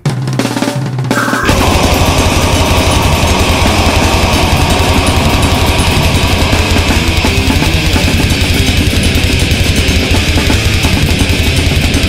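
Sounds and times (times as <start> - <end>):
death metal band playing: 1.1 - 12.0.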